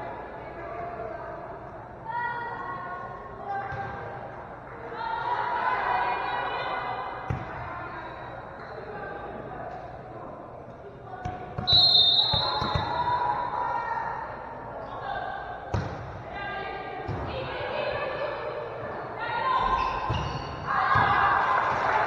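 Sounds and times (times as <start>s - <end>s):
voices echoing in gym: 0.0s - 22.0s
referee's whistle: 11.7s - 13.2s.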